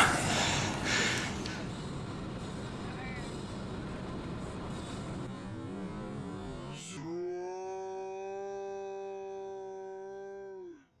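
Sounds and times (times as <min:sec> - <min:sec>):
man singing long note: 0:07.0 - 0:10.9.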